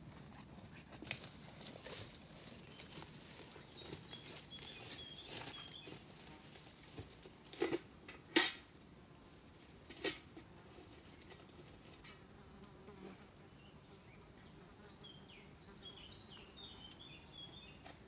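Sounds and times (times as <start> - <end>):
rustling through brush: 0.0 - 7.8.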